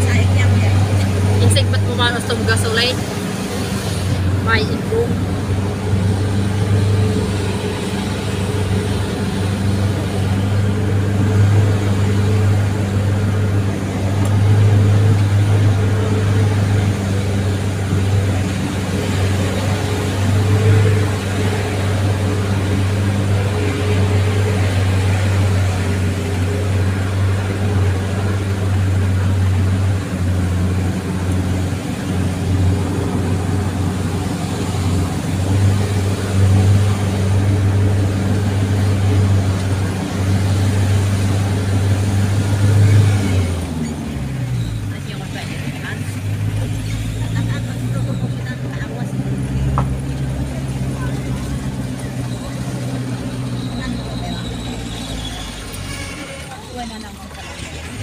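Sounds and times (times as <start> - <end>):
vehicle engine drone: 0.0 - 58.0.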